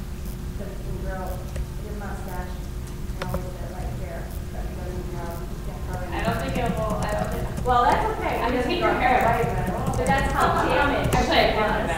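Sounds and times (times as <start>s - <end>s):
indistinct voices talking: 0.6s - 11.9s.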